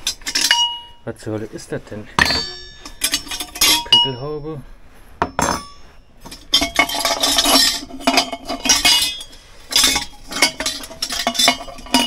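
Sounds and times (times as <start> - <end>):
metal tableware clinking: 0.0 - 1.0, 2.2 - 4.4, 5.2 - 12.0
metal pot ringing: 0.0 - 1.1, 2.2 - 4.6, 5.2 - 12.0.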